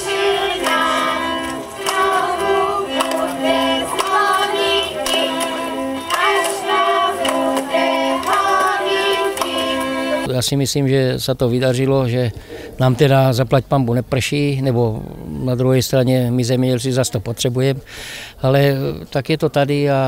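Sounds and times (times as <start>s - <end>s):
children singing: 0.0s - 10.3s
instrumental accompaniment: 0.0s - 10.3s.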